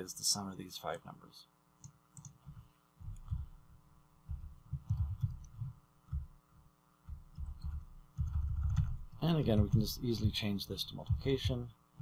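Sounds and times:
electrical hum: 0.0 - 12.0
soft low thumps: 2.4 - 6.4, 7.0 - 12.0.

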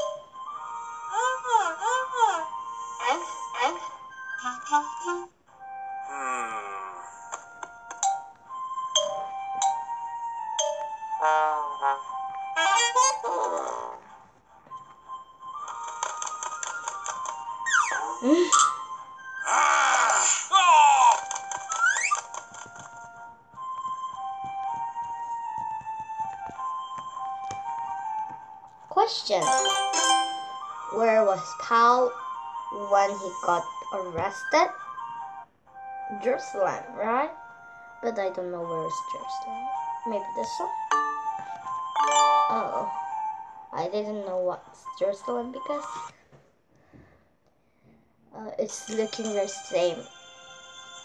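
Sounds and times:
gentle background music: 0.0 - 46.3, 48.2 - 51.0.

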